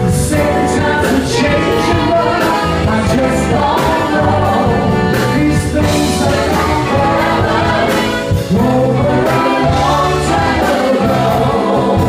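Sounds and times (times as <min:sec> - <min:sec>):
live blues-rock band: 0:00.0 - 0:12.0
women singing together: 0:00.2 - 0:12.0.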